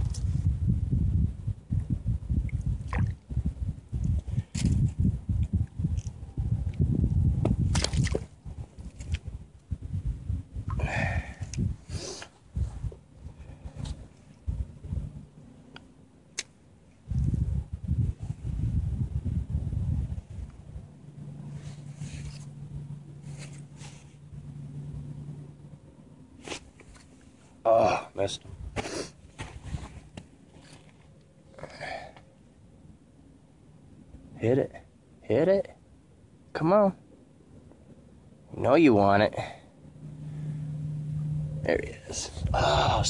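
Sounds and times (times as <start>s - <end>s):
wind buffeting microphone: 0.0s - 15.4s, 17.0s - 21.0s, 42.0s - 43.0s.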